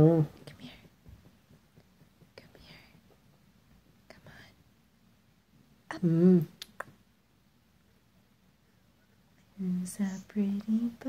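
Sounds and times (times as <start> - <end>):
person whispering: 0.1 - 0.9, 2.4 - 3.0, 4.1 - 4.6, 9.4 - 11.0.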